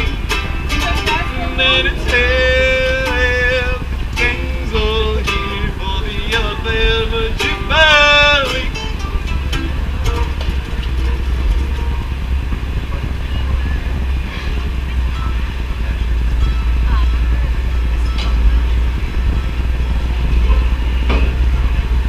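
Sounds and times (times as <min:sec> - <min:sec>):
banjo music: 0:00.0 - 0:22.0
low outdoor rumble: 0:00.0 - 0:22.0.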